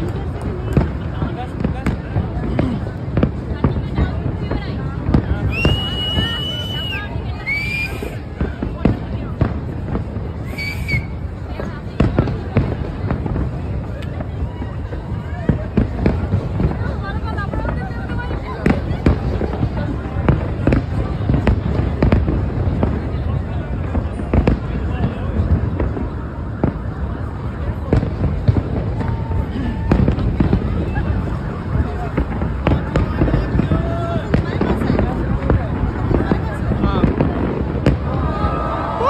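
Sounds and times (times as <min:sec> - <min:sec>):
fireworks bangs: 0:00.0 - 0:39.0
low rumble of fireworks: 0:00.0 - 0:39.0.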